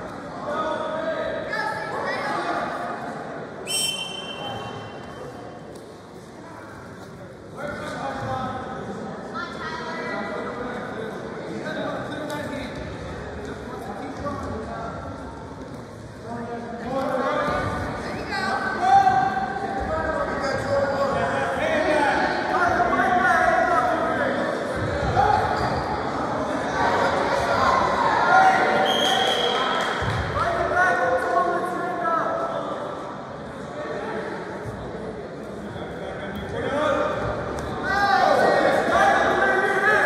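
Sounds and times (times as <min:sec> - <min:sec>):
voices shouting in echoing gym: 0:00.0 - 0:15.6, 0:16.2 - 0:40.0
referee's whistle blast: 0:03.7 - 0:04.9, 0:28.8 - 0:29.7.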